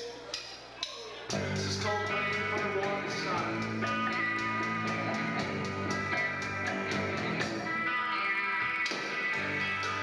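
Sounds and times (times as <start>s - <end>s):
steady drum beat: 1.3s - 8.0s
live rock band playing: 1.3s - 10.0s.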